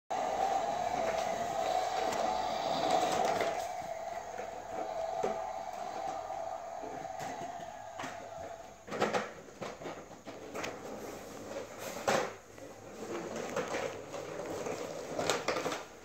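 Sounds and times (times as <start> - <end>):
toy truck rolling on tiled floor: 0.1 - 16.0.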